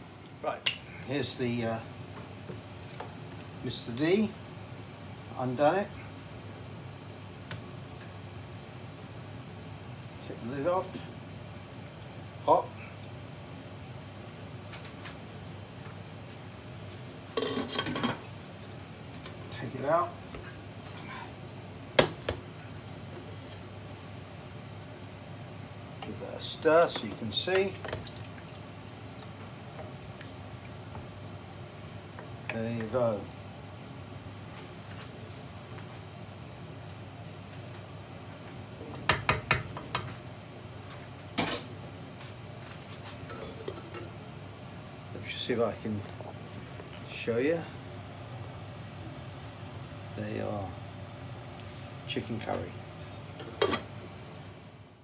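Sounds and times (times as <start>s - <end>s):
steady low hum: 0.0s - 55.0s
wooden spoon knocking on saucepan: 39.0s - 40.1s.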